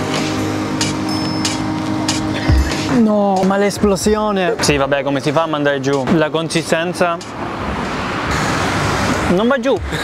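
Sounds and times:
car passing: 1.6 - 10.0.

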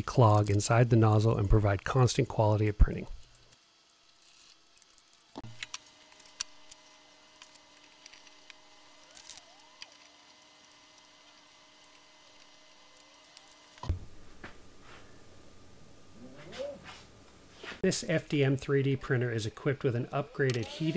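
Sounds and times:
faint steady hum: 0.0 - 20.9.

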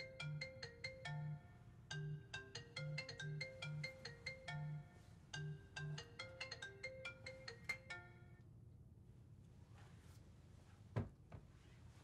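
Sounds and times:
mobile phone ringtone: 0.0 - 8.4.

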